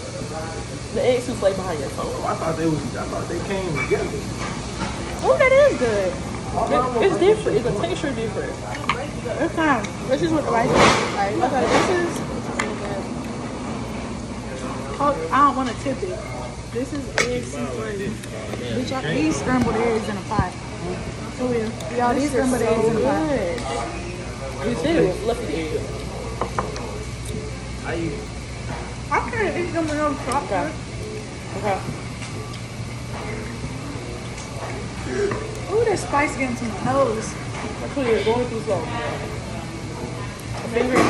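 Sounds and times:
faint chatter of diners: 0:00.0 - 0:41.0
faint voices: 0:00.0 - 0:41.0
steady low hum: 0:00.0 - 0:41.0.

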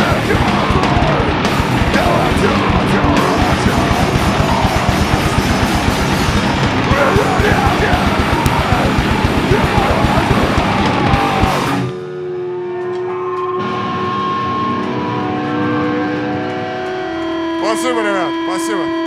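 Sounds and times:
metal band playing live: 0:00.0 - 0:12.1
guitar whines: 0:00.0 - 0:19.0
electric guitar tones ringing: 0:00.7 - 0:19.0.

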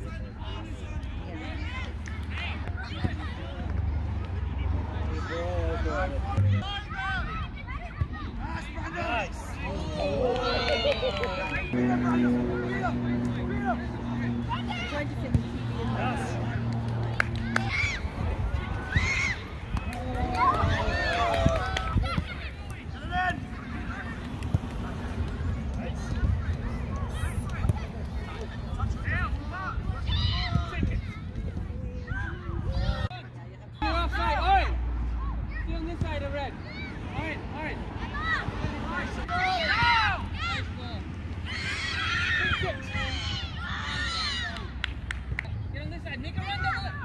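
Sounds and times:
people shouting and calling out: 0:04.4 - 0:45.0, 0:45.8 - 0:47.0
children shouting: 0:17.1 - 0:24.2, 0:29.9 - 0:31.1, 0:41.4 - 0:44.8.

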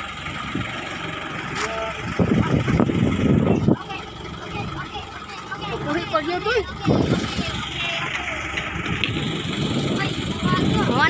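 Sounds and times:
boat engine running: 0:00.0 - 0:11.0
people's voices: 0:01.2 - 0:11.0.

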